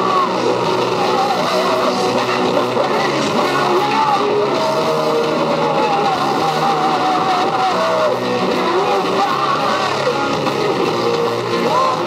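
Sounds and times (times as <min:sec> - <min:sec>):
bent guitar lead line: 0:00.0 - 0:12.0
heavy metal band playing: 0:00.0 - 0:12.0.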